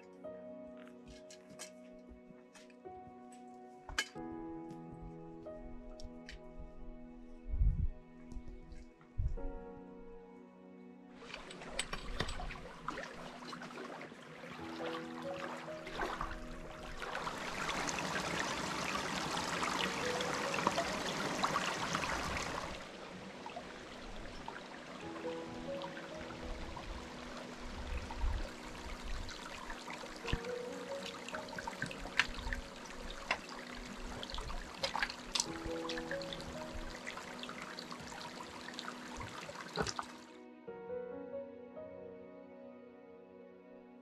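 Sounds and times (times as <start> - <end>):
soft background music: 0.0 - 44.0
boots and poles clicking on stones: 0.8 - 4.2
stream running over rocks: 11.2 - 40.3.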